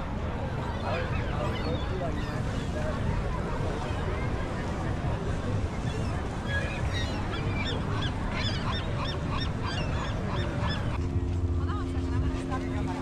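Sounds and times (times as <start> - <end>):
surf: 0.0 - 13.0
wind: 0.0 - 13.0
seagulls calling: 0.8 - 2.8, 5.7 - 12.6
steady low hum: 4.3 - 13.0.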